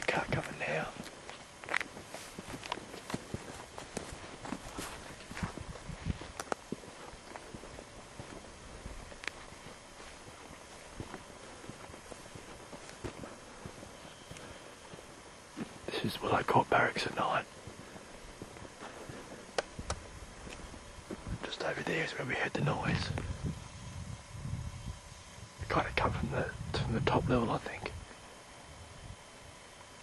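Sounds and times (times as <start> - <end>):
footsteps walking: 0.0 - 22.1
faint steady hiss: 0.0 - 30.0.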